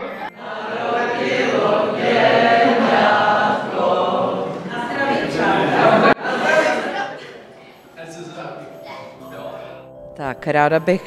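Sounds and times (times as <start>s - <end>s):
group singing together: 0.0s - 9.9s.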